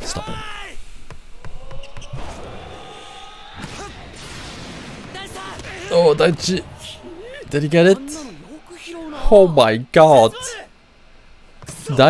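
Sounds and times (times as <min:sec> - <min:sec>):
steady hiss: 0:00.0 - 0:01.8.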